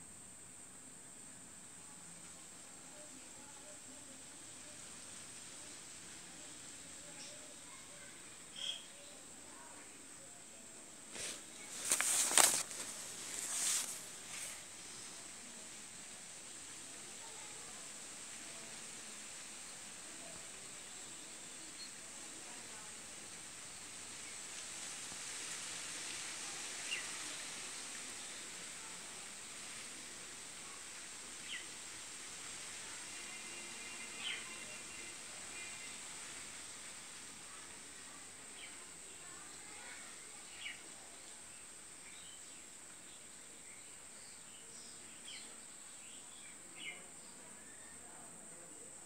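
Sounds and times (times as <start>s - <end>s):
steady high hiss: 0.0s - 49.0s.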